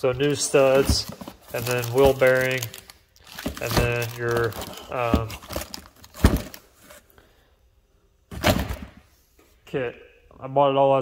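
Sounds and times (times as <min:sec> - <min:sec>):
thunk in cardboard box: 0:06.2 - 0:06.6, 0:08.3 - 0:09.0.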